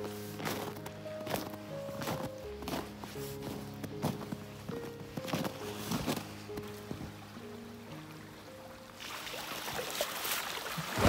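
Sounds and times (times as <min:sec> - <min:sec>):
footsteps in snow: 0:00.0 - 0:07.1
soft background music: 0:00.0 - 0:10.0.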